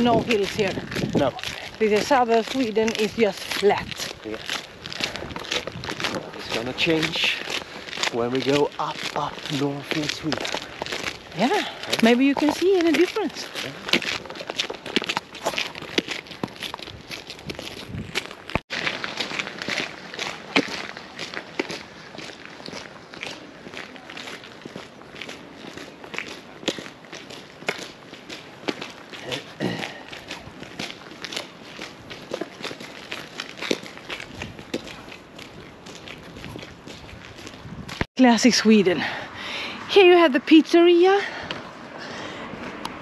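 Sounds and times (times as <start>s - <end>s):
footsteps on pavement: 0.0s - 43.0s.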